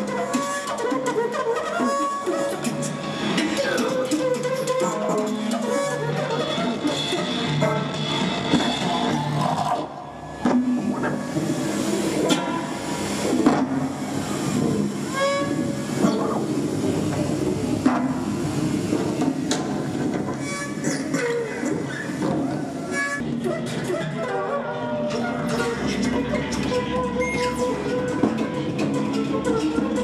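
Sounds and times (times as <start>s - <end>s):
electronic noise music drone: 0.0s - 30.0s.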